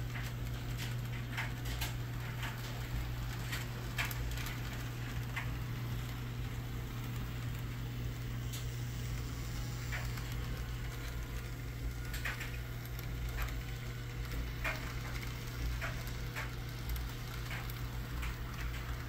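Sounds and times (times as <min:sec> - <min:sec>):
model locomotive humming: 0:00.0 - 0:19.0
wheels clicking over track: 0:00.0 - 0:19.0.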